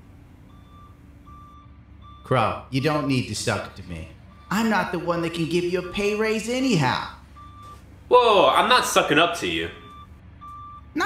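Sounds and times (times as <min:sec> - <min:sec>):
reversing alarm beeping: 0:00.4 - 0:07.9, 0:08.7 - 0:11.0.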